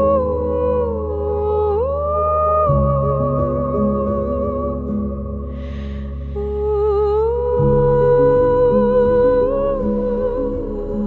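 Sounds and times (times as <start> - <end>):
ambient background music: 0.0 - 11.0.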